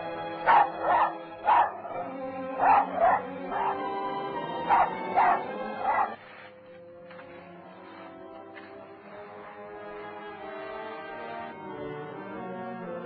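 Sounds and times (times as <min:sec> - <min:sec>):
orchestral film music: 0:00.0 - 0:13.0
dog barking: 0:00.4 - 0:06.2.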